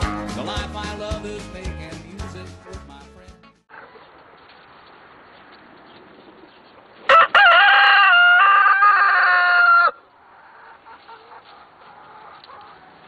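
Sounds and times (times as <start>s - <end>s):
rooster crowing: 7.1s - 10.0s.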